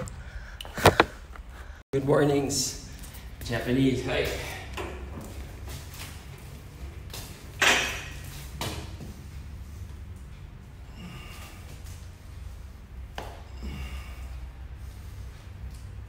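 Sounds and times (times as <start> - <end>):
steady low hum: 0.1 - 16.0
man exhaling forcefully: 13.4 - 14.7.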